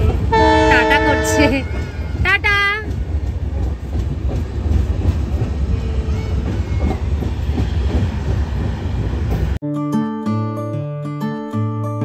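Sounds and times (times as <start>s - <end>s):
train wheels rumbling on rails: 0.0s - 9.6s.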